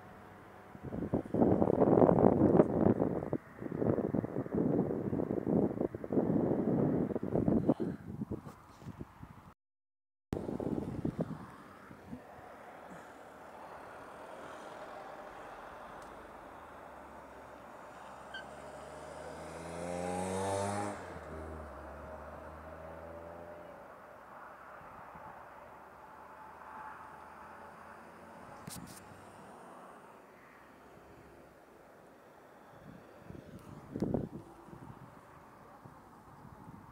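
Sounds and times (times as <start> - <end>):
outdoor background noise: 0.0 - 9.6, 10.4 - 36.9
vehicle engine accelerating past: 13.0 - 23.9.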